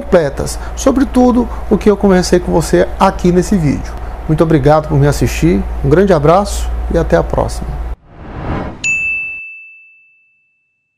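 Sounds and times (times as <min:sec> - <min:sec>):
whoosh: 0:08.0 - 0:08.9
bright high ding: 0:08.8 - 0:10.8.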